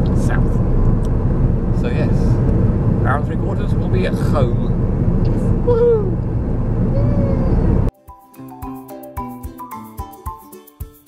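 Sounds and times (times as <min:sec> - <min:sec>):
car cabin road and engine rumble: 0:00.0 - 0:07.9.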